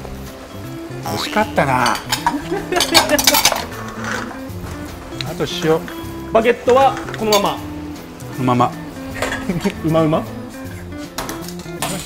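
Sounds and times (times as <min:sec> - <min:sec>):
metal pans and utensils clattering: 0:01.1 - 0:05.8, 0:06.6 - 0:07.6, 0:09.0 - 0:09.8, 0:10.8 - 0:12.0.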